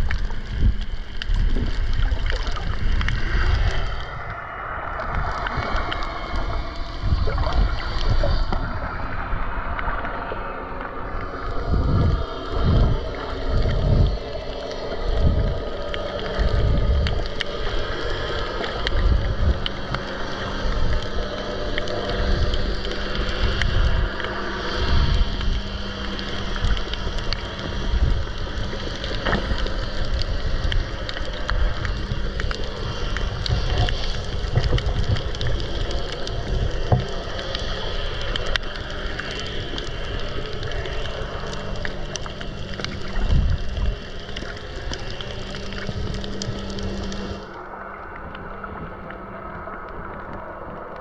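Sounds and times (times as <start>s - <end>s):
faint clicks: 0.0s - 4.2s, 13.0s - 51.0s
underwater thumps and rushing: 0.0s - 10.2s, 11.6s - 50.8s
steady low hum: 0.0s - 51.0s.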